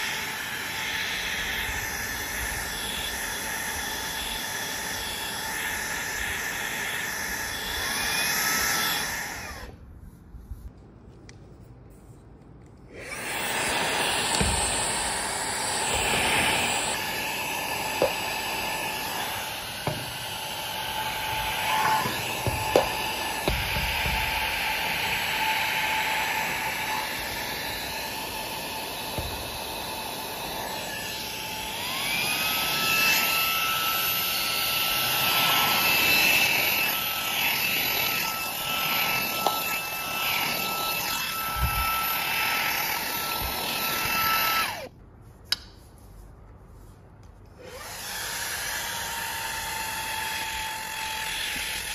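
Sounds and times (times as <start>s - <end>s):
handheld vacuum running: 0.0s - 9.8s, 12.9s - 44.9s, 47.6s - 51.9s.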